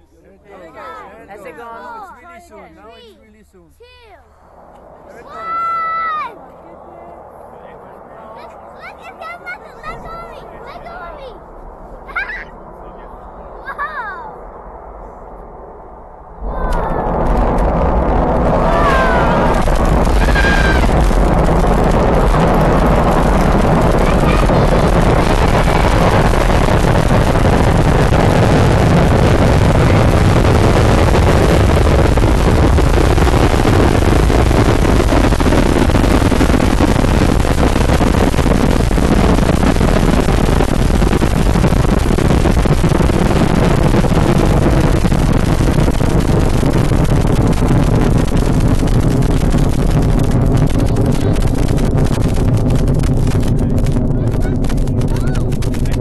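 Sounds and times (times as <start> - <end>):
crowd murmur: 0.0 - 2.8, 4.5 - 14.3, 16.4 - 17.3, 18.4 - 30.4
outdoor noise: 0.0 - 56.0
rocket engines rumbling: 0.0 - 56.0.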